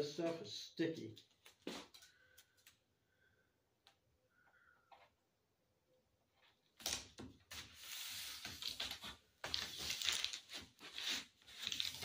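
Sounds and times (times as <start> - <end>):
plastic sheeting crinkling: 7.8 - 12.0.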